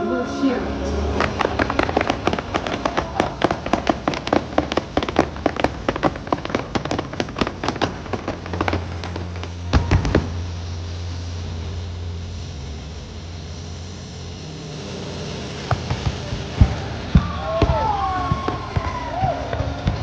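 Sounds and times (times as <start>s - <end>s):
low steady rumble: 0.0s - 20.0s
firework bursts cracking: 0.4s - 20.0s
heavy firework booms: 1.1s - 10.8s.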